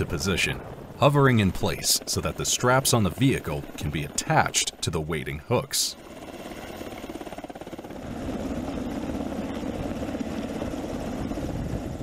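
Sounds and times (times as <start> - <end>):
helicopter rotor beating: 0.0 - 12.0.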